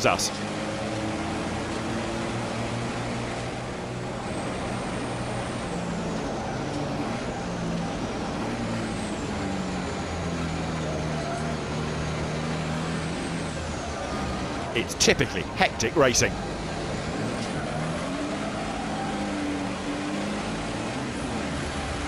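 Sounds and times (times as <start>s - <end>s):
truck engine running hard: 0.0s - 22.0s.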